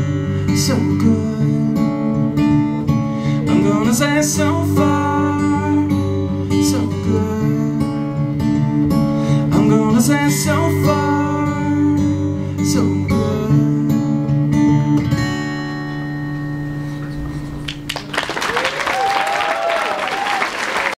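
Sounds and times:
acoustic guitar strumming: 0.0 - 18.1
audience applause and cheering: 17.5 - 21.0.

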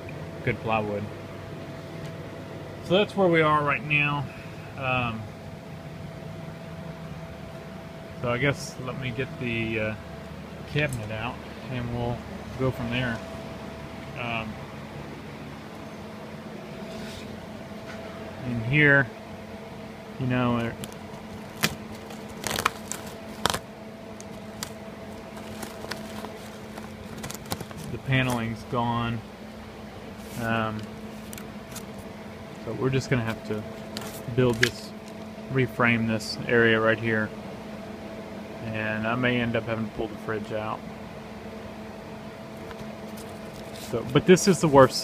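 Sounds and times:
steady low hum: 0.0 - 45.0
hand handling microphone clicks: 24.2 - 28.5.

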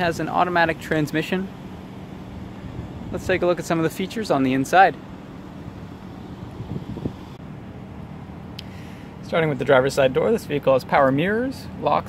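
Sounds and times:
low outdoor rumble: 0.0 - 12.0
wind on microphone: 6.4 - 7.4.

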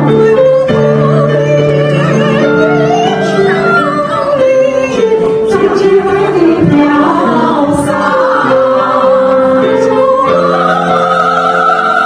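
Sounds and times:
women's choir singing: 0.0 - 12.0.

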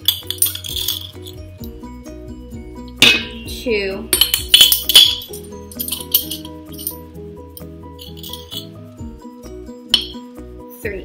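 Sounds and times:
metal spoon clinking on glass jar: 0.0 - 1.7, 4.1 - 7.0, 7.6 - 8.8, 10.0 - 10.2
background music: 0.0 - 11.0.

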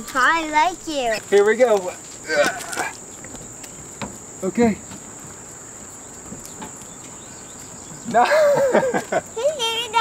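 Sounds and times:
insects chirping: 0.0 - 10.0.

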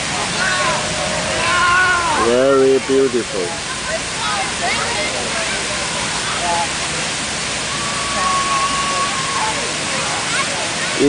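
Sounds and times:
faint voices: 0.0 - 11.0
fountain water rushing: 0.0 - 11.0.

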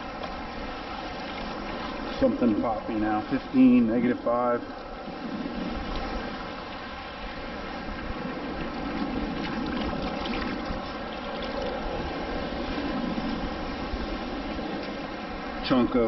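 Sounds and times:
seawater sloshing around legs: 0.0 - 15.7.

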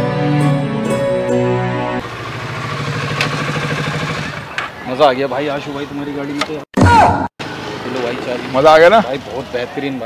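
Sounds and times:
motorcycle engine at low revs: 2.0 - 4.7.

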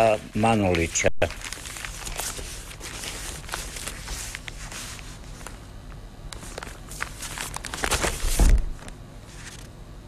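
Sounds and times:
newspaper pages rustling: 0.3 - 5.6, 6.4 - 9.7.

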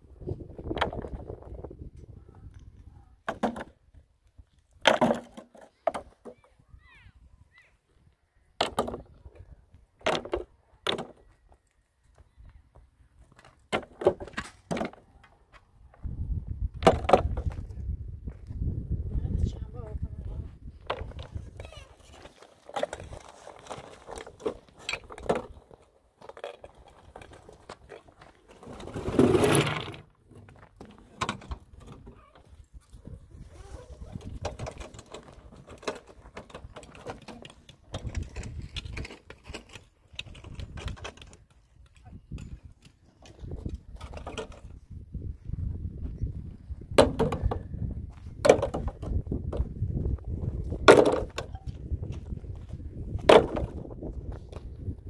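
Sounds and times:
stones knocking and scraping: 0.5 - 1.7, 2.4 - 6.4, 8.6 - 11.6, 12.7 - 16.1, 16.7 - 18.6, 20.6 - 33.2, 34.1 - 44.9, 46.8 - 55.0
stones rattling: 20.8 - 32.0
stones landing in metal wheelbarrow: 22.1 - 32.0.

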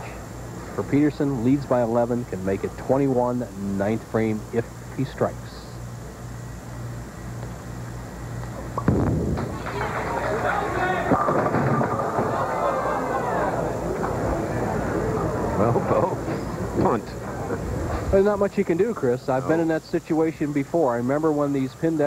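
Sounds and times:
bowling ball crashing into pins: 8.8 - 12.8
noisy crowd reaction: 9.4 - 18.0.

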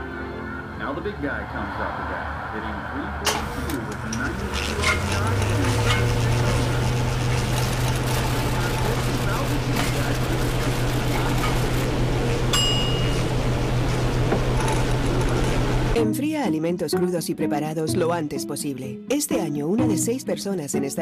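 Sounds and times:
electric fans whirring: 0.0 - 16.0
ice clinking in a glass: 12.5 - 13.3.

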